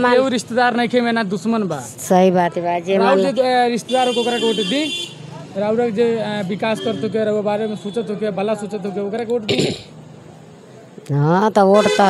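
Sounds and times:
people talking: 0.0s - 4.9s, 11.0s - 12.0s
vehicle horn: 3.0s - 5.2s, 11.8s - 12.0s.

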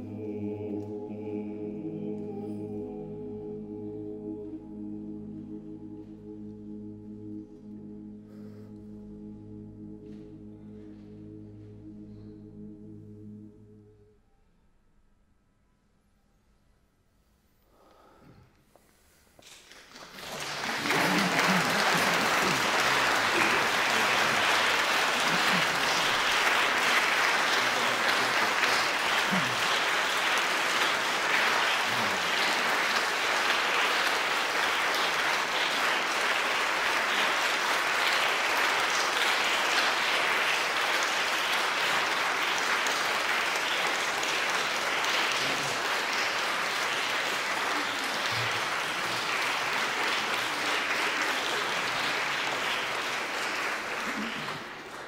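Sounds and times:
audience applauding: 19.4s - 55.0s.

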